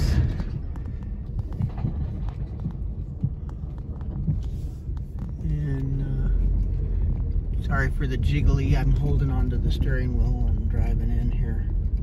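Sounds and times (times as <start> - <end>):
car driving over gravel: 0.0 - 12.0
gravel clicking under tyres: 0.0 - 12.0.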